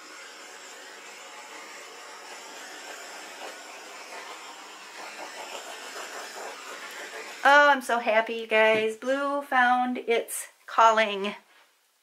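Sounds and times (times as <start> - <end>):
butane torch hissing: 0.0 - 7.9.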